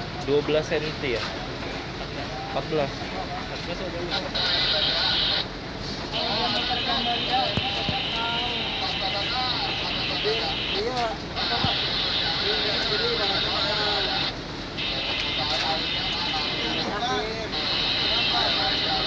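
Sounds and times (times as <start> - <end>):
people talking: 0.0 - 19.0.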